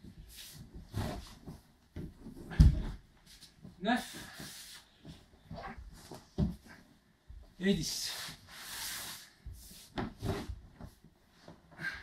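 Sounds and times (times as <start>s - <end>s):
body thudding on wooden floor: 0.8s - 3.2s.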